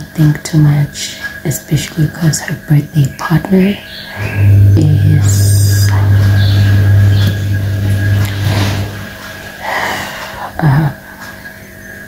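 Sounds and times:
loud low hum: 0:04.1 - 0:09.2.

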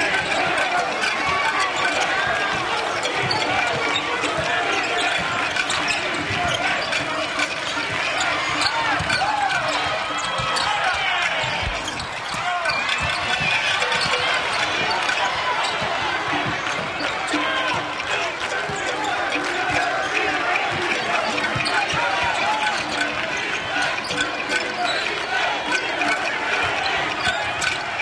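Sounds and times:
crowd voices buzzing: 0:00.0 - 0:28.0
sneaker squeaks: 0:00.2 - 0:20.8, 0:21.4 - 0:25.8.

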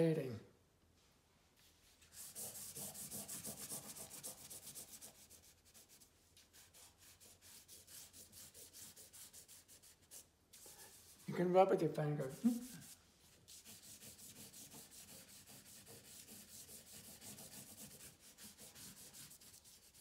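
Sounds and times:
charcoal scratching on paper: 0:01.8 - 0:11.3, 0:12.2 - 0:20.0.

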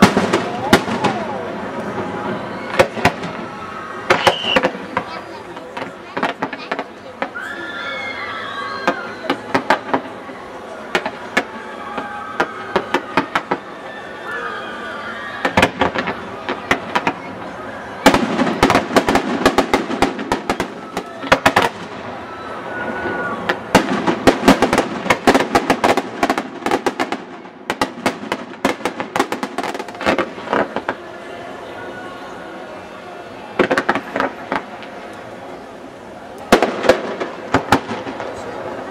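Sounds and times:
firework cracks: 0:00.0 - 0:07.4, 0:08.8 - 0:10.3, 0:10.9 - 0:13.8, 0:15.4 - 0:22.3, 0:23.4 - 0:31.3, 0:33.5 - 0:35.6, 0:36.2 - 0:38.9
shrill firework whistle: 0:03.5 - 0:04.8, 0:22.2 - 0:23.5.

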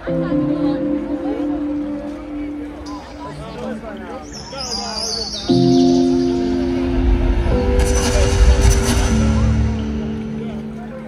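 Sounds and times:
high chirping bird-like sounds: 0:04.2 - 0:06.6.

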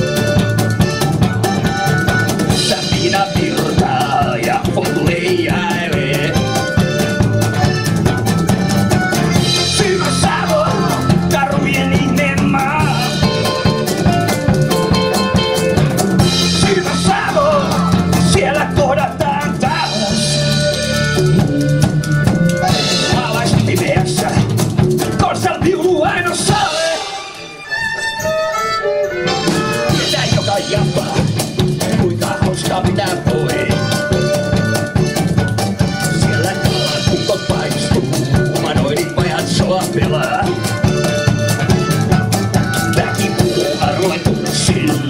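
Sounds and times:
blues band playing: 0:00.0 - 0:45.0
electric guitar lead lines: 0:00.0 - 0:45.0
violin playing held notes: 0:26.6 - 0:30.2.

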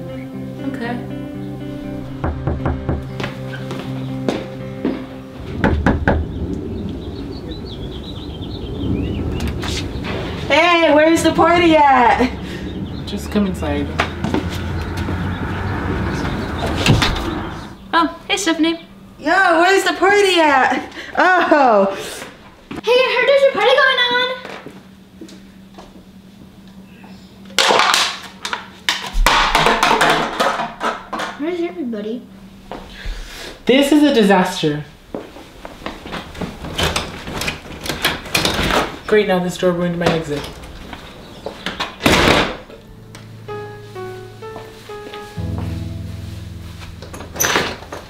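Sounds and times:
wooden door slamming shut: 0:02.0 - 0:03.2, 0:41.8 - 0:42.7
background rumble: 0:05.4 - 0:19.4.

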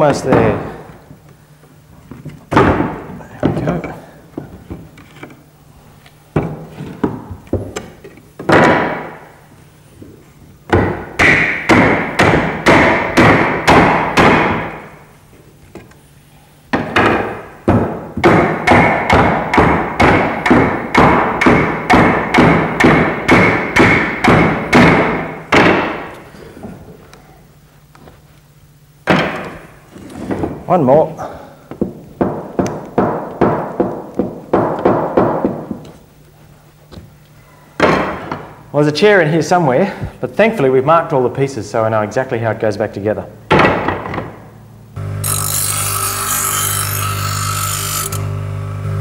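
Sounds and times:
wooden mallet striking chair: 0:06.4 - 0:09.2, 0:16.7 - 0:26.1, 0:31.8 - 0:36.0, 0:37.8 - 0:38.5.

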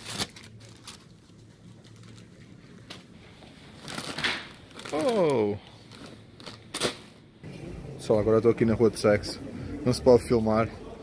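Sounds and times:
crisp packet rustling: 0:00.0 - 0:02.8, 0:03.7 - 0:07.0
plastic wrapper crinkling: 0:00.0 - 0:03.0, 0:03.7 - 0:07.0
low hum: 0:07.3 - 0:11.0.

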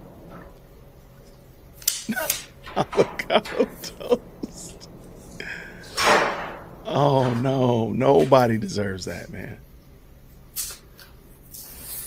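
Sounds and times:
low background hum: 0:00.0 - 0:12.0
short sharp hiss: 0:10.5 - 0:12.0.

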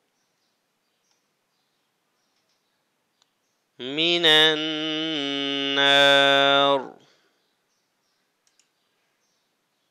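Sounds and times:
recited voice: 0:03.8 - 0:07.1
computer mouse clicks: 0:08.4 - 0:08.8.

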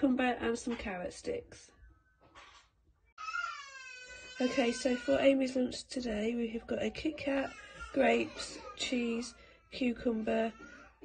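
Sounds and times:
young child crying: 0:03.2 - 0:05.0.

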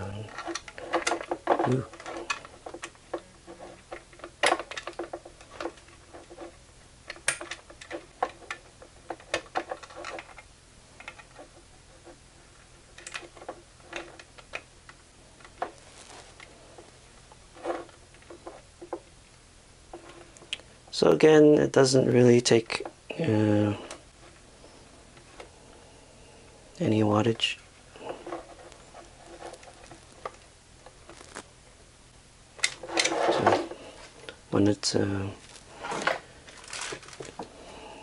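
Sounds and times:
wire leads clicking and scraping: 0:00.0 - 0:20.7, 0:26.7 - 0:31.6, 0:32.6 - 0:37.8.

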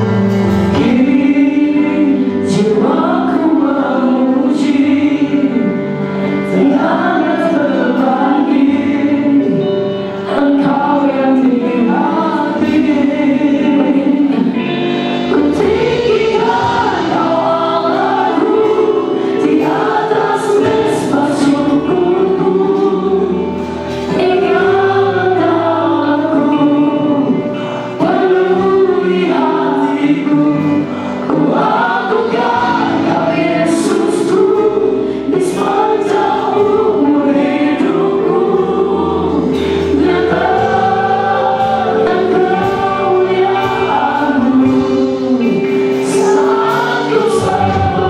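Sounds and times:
group singing worship song: 0:00.0 - 0:48.0
instrumental accompaniment: 0:00.0 - 0:48.0.

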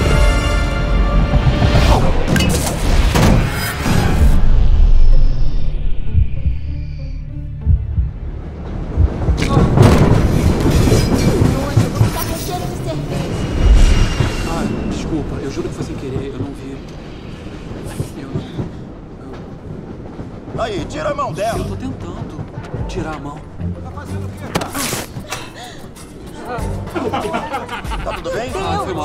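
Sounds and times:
film score music: 0:00.0 - 0:29.0
subway car rumble and rattle: 0:07.6 - 0:28.2.

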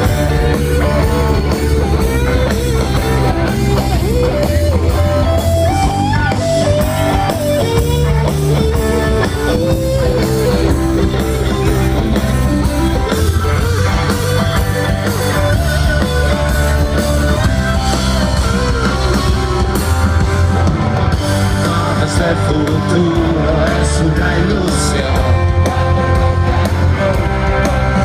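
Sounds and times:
drum kit: 0:00.0 - 0:28.0
lead guitar melody: 0:00.0 - 0:28.0.

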